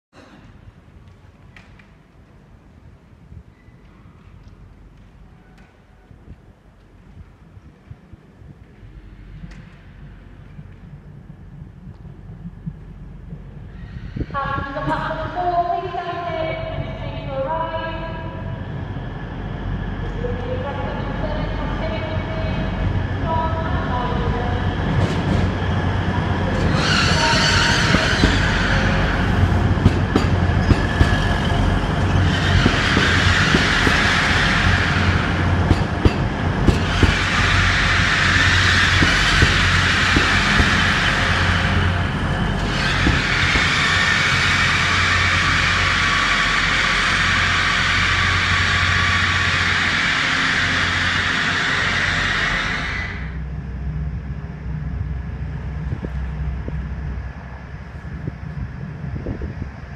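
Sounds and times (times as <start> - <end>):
train engine hum: 0.1 - 59.9.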